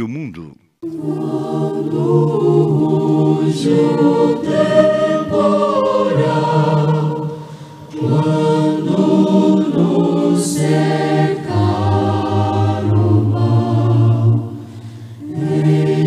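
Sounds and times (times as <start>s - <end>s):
choir singing a hymn: 0.8s - 16.0s.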